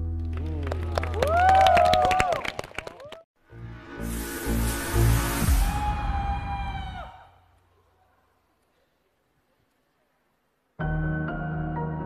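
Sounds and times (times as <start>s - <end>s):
audience clapping: 0.0s - 3.3s
audience cheering: 0.4s - 3.2s, 5.5s - 7.4s.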